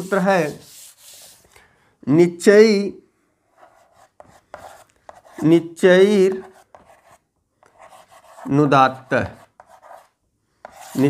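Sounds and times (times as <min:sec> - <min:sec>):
chalk tapping and scratching: 0:00.0 - 0:01.5, 0:03.6 - 0:05.5, 0:06.2 - 0:11.0.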